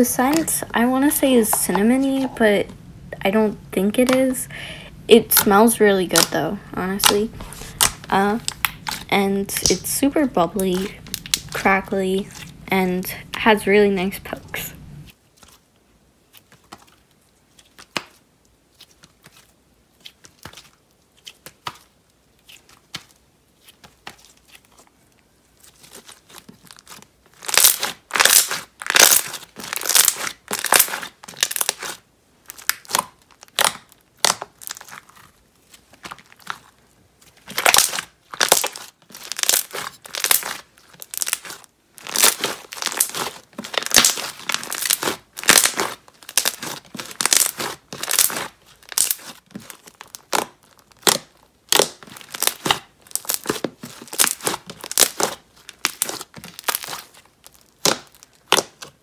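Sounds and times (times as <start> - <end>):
slime crackling and popping: 0.0 - 13.5, 25.6 - 59.0.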